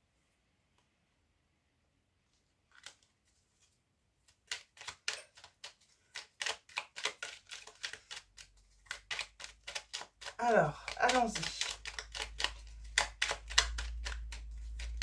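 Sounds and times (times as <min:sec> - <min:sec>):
cards being shuffled: 0:02.3 - 0:15.0.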